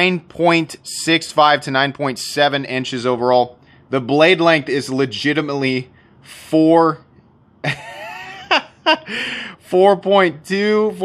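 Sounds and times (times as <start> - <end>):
man chuckling: 7.6 - 9.6.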